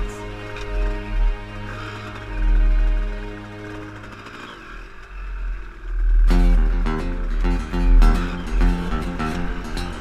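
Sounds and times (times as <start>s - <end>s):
motorcycle engine revving: 0.7s - 10.0s.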